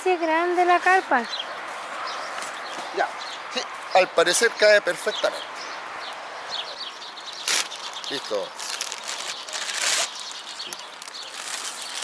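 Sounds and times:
plastic bag crinkling: 7.4s - 12.0s.

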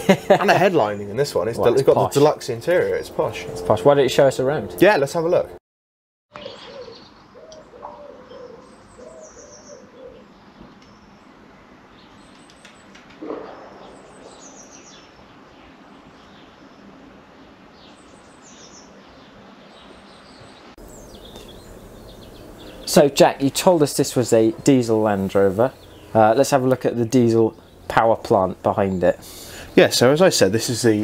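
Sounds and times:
birds chirping: 0.0s - 5.6s, 6.3s - 31.0s
lower repeated bird call: 12.0s - 16.9s, 20.0s - 23.0s.

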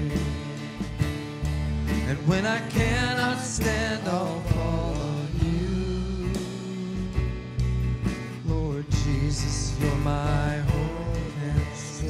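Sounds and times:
person singing: 0.0s - 0.6s, 2.0s - 7.3s, 8.4s - 12.0s
acoustic guitar: 0.0s - 12.0s
drums: 0.0s - 12.0s.

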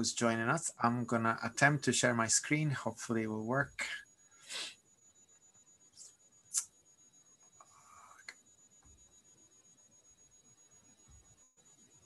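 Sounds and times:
faint high-pitched tone: 0.0s - 12.0s
breath-like hiss: 4.4s - 4.8s.

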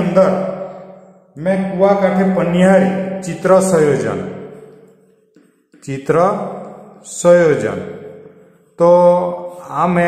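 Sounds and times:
man narrating: 0.0s - 0.7s, 1.4s - 4.4s, 5.8s - 8.0s, 8.8s - 10.0s.

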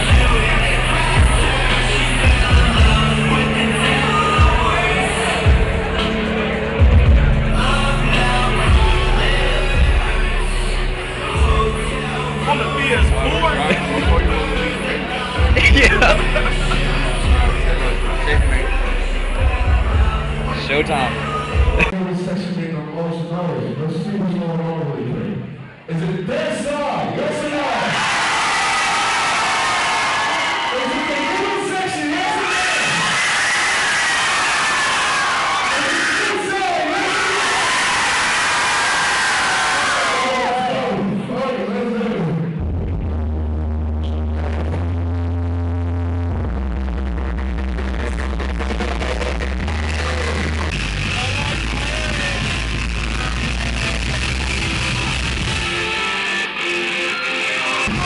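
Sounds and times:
beat with deep bass notes: 0.0s - 22.0s, 42.2s - 55.9s
live music over loudspeakers: 0.0s - 58.0s
person speaking into microphone: 12.4s - 17.3s, 20.5s - 27.9s.

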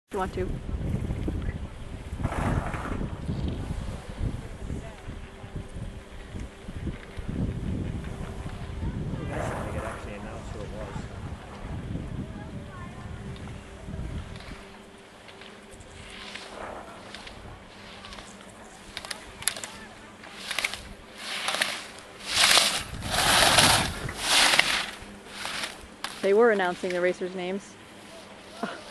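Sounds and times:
wind buffeting microphone: 0.1s - 14.9s, 15.7s - 19.9s, 22.1s - 26.8s
skis scraping on snow: 6.8s - 11.6s, 13.4s - 28.9s.

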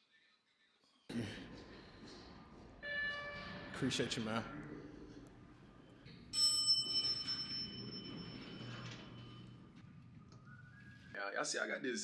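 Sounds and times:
bright bell chime: 6.1s - 9.5s.

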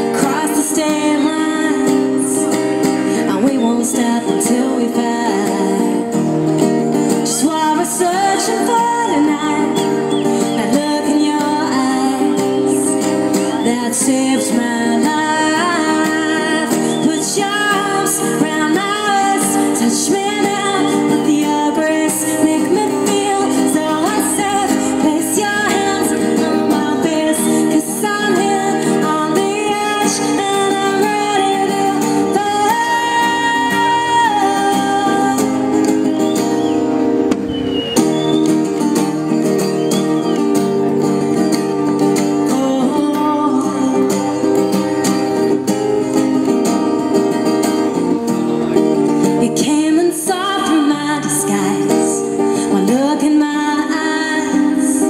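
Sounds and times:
woman singing: 0.0s - 36.5s, 42.0s - 48.0s, 49.2s - 55.0s
acoustic guitar: 0.0s - 55.0s.

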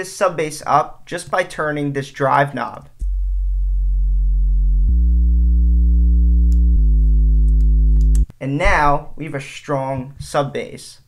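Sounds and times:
distorted deep sub bass tone: 3.0s - 8.8s.

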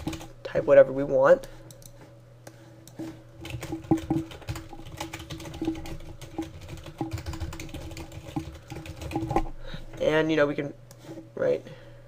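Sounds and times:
keyboard typing: 0.0s - 0.3s, 3.4s - 9.5s
steady low hum: 0.0s - 12.0s.

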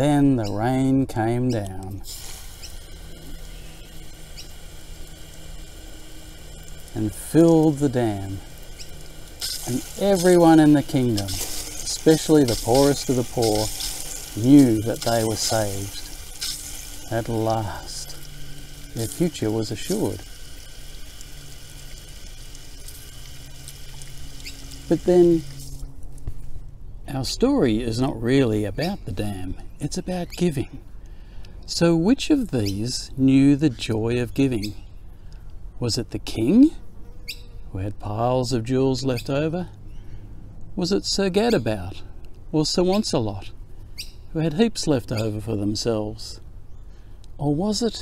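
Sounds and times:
water spray falling on soil: 2.0s - 25.9s.

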